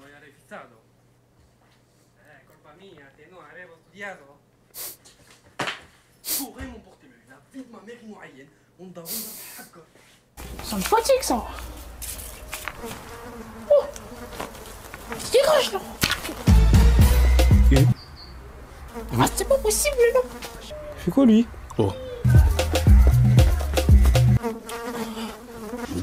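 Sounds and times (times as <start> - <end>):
music with heavy bass beat: 16.5 - 18.0, 22.3 - 24.4.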